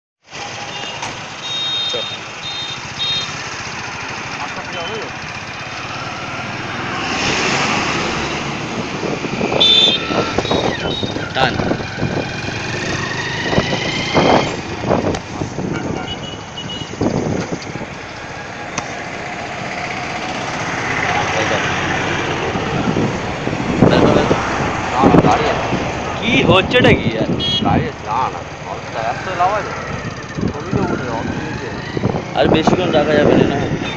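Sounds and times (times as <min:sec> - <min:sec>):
passing traffic: 0:00.2 - 0:33.9.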